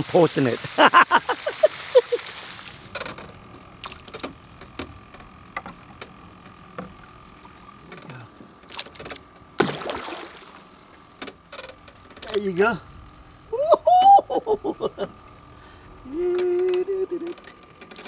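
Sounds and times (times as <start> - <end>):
man laughing: 0.6 - 2.3, 13.5 - 15.3, 16.0 - 17.4
water splashing: 9.6 - 11.0.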